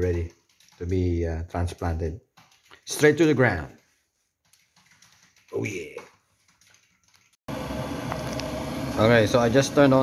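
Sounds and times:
electric kettle heating water: 0:07.5 - 0:10.0.

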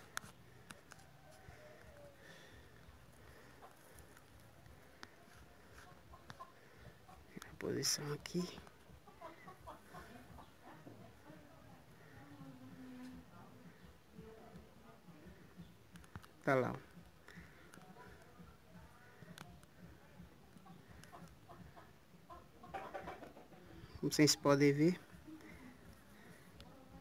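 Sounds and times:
bird clucking calls: 0:04.9 - 0:11.0, 0:20.5 - 0:24.0.

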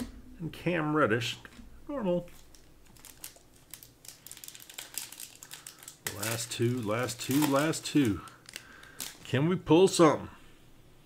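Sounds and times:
foil wrapper crinkling: 0:02.2 - 0:09.3.

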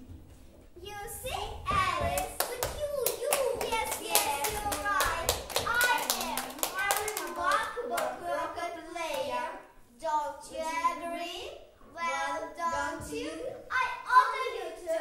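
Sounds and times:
young children's voices: 0:00.8 - 0:15.0.

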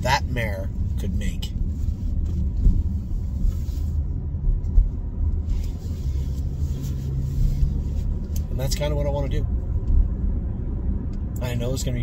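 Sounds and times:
car engine rumble: 0:00.0 - 0:12.0
road noise: 0:00.0 - 0:12.0
steady low hum: 0:00.0 - 0:12.0.

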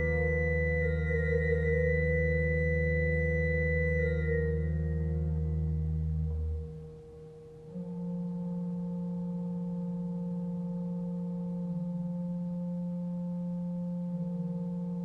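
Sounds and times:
low organ pedal tones: 0:00.0 - 0:15.0
organ sustained notes: 0:00.0 - 0:15.0.

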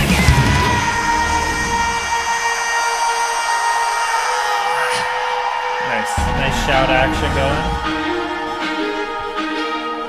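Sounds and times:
held chord ringing: 0:05.3 - 0:10.0.

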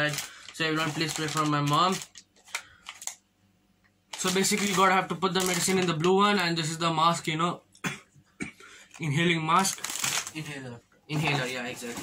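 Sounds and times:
packaging being handled: 0:00.0 - 0:03.2, 0:04.1 - 0:06.6, 0:08.9 - 0:10.6.

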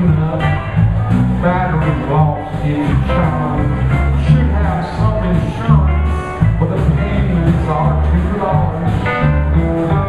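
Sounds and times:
drum kit: 0:00.0 - 0:10.0
electric bass: 0:00.0 - 0:10.0
electric guitars: 0:00.0 - 0:10.0.

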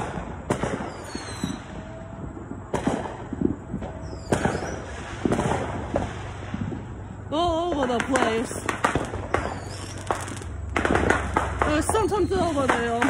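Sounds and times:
fireworks bangs with echo: 0:00.0 - 0:13.0
faint falling firework whistle: 0:00.7 - 0:05.4, 0:09.4 - 0:10.5.

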